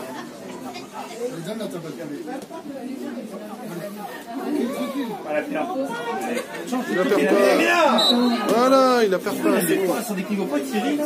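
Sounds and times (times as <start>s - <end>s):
voices calling out and talking: 0.0s - 11.0s.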